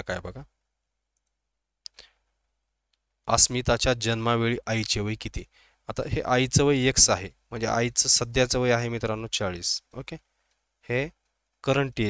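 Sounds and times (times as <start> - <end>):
man speaking: 0.0 - 0.5, 3.2 - 10.2, 10.8 - 12.0.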